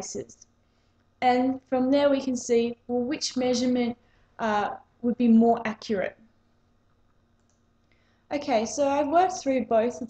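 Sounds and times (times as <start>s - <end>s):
woman speaking: 0.0s - 0.4s, 1.2s - 6.3s, 8.3s - 10.0s
faint steady hum: 0.0s - 10.0s.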